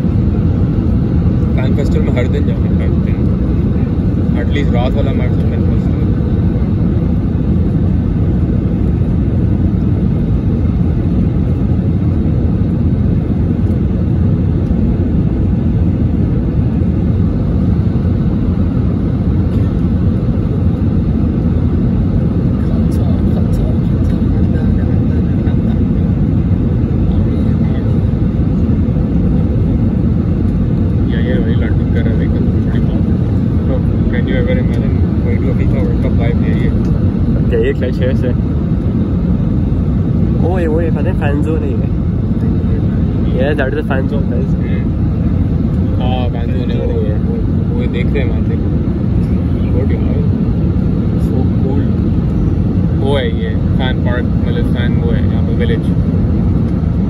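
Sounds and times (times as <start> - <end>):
aircraft cabin engine roar: 0.0 - 57.0.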